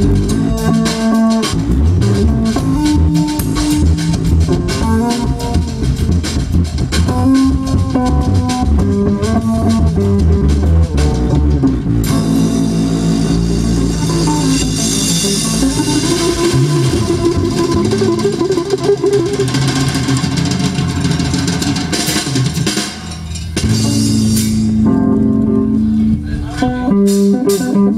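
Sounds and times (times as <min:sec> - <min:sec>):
band playing instrumental: 0:00.0 - 0:27.9.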